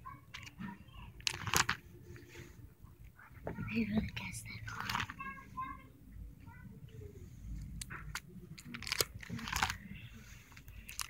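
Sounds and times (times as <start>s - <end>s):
plastic sleeves rustling: 1.2s - 2.6s, 4.7s - 5.4s, 7.6s - 11.0s
person whispering: 3.7s - 5.2s.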